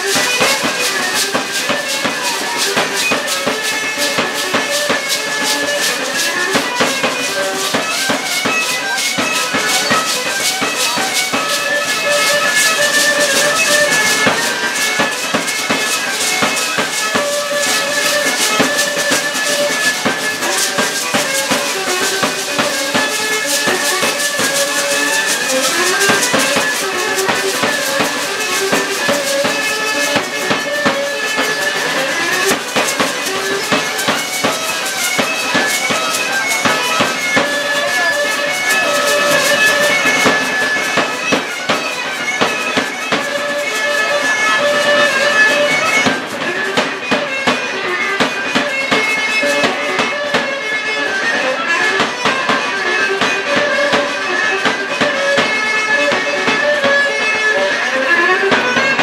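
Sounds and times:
hand rattles shaking: 0.0s - 46.8s
drum beat: 0.0s - 50.5s.

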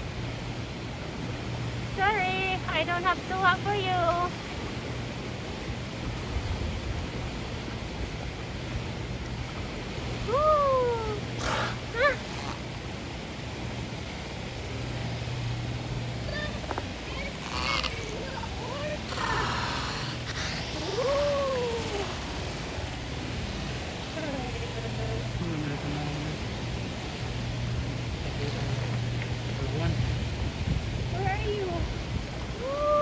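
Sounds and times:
water and air background: 0.0s - 33.0s
whale squealing calls: 10.3s - 12.7s, 17.3s - 22.2s.

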